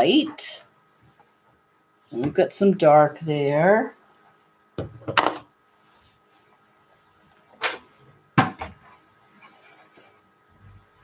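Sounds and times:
knocks on a table: 0:04.8 - 0:05.4
fabric rustling: 0:05.7 - 0:07.9.

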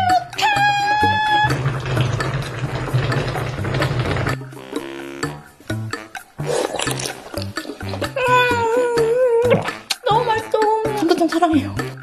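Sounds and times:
background music with bass line: 0:00.7 - 0:12.0.

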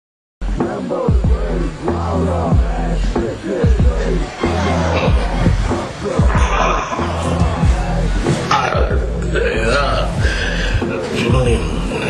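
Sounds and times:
man groaning: 0:06.2 - 0:11.0.

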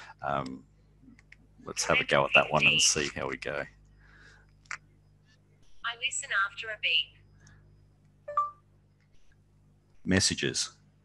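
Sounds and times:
phone electronic beep: 0:08.3 - 0:08.6.

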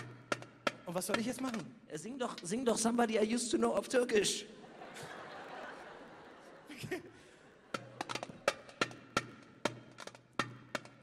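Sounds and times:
hand drum strikes: 0:00.0 - 0:01.7, 0:07.7 - 0:11.0.

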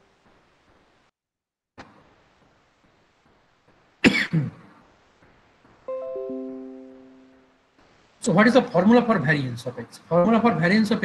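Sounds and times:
person coughing: 0:04.0 - 0:04.6.

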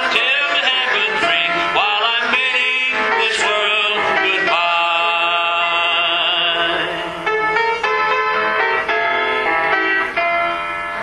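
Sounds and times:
gospel singing with accompaniment: 0:00.0 - 0:07.6.

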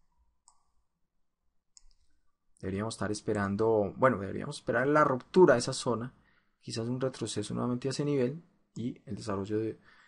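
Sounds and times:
faint computer mouse clicks: 0:00.4 - 0:00.7, 0:01.8 - 0:02.1.

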